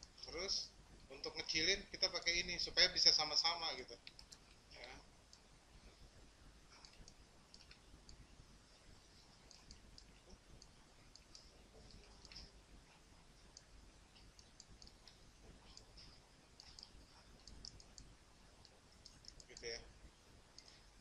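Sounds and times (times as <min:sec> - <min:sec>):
computer mouse clicks: 0:04.0 - 0:04.6, 0:06.7 - 0:08.2, 0:09.4 - 0:12.5, 0:13.4 - 0:19.8, 0:20.5 - 0:20.9.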